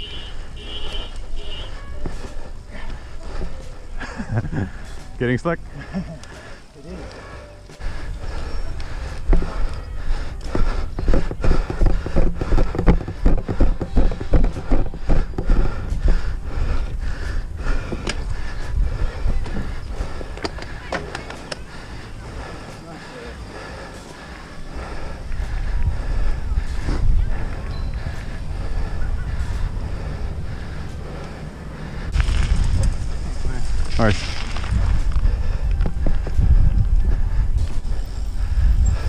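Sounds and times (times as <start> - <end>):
wind buffeting microphone: 7.8 - 39.0
bike knocks and rattles: 10.5 - 16.7.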